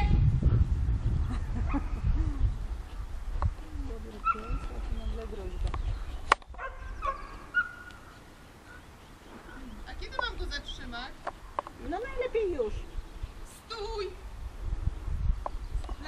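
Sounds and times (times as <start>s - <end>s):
wind rumble on microphone: 0.0s - 7.9s, 9.3s - 16.0s.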